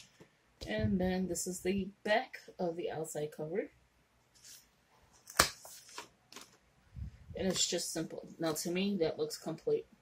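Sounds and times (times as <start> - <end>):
paper rustling: 4.4 - 6.6
notebook cover snapping: 5.2 - 6.6.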